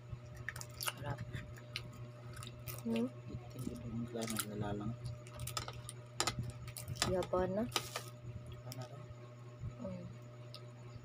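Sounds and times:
steady low hum: 0.0s - 11.0s
eating clicks and smacks: 0.3s - 3.0s.

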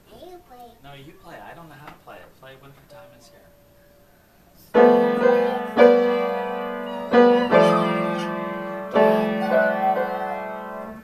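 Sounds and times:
grand piano chords: 4.7s - 11.0s.

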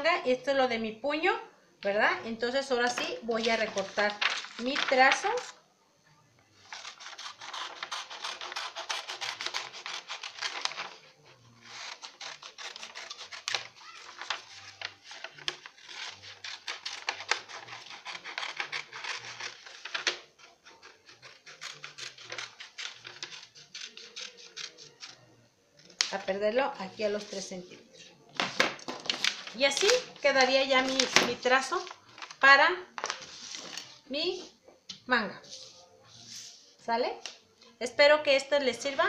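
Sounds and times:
paper rustling: 2.9s - 5.6s, 6.7s - 25.2s, 27.2s - 34.0s
scissors cutting paper: 6.6s - 25.2s.

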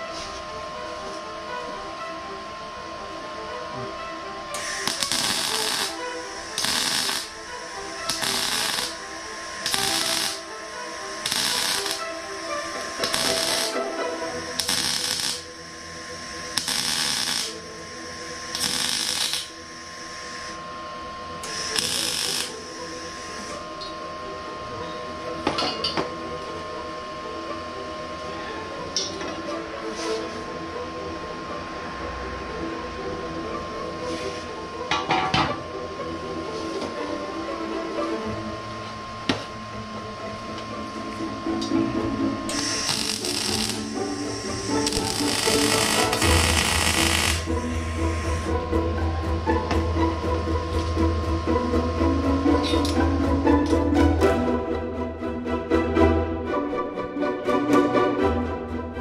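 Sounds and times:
background music: 0.0s - 59.0s
crackling mig welding: 4.6s - 20.7s, 21.4s - 23.9s, 42.5s - 48.6s.

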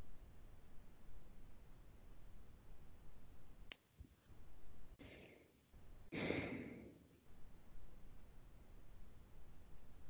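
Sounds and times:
person exhaling breathily: 6.1s - 7.0s.

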